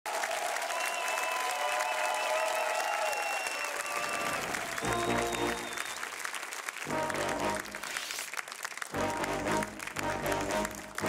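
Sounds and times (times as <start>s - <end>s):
cheering calls: 0.0s - 6.2s
audience applauding: 0.0s - 11.0s.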